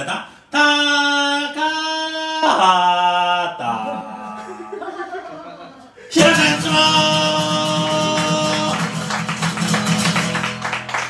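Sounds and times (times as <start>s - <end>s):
man singing a held note: 6.1s - 8.8s
acoustic guitar strumming: 6.1s - 10.8s.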